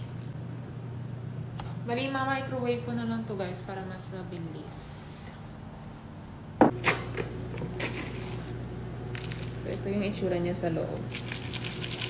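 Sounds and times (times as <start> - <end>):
microwave humming: 0.0 - 4.6, 5.5 - 12.0.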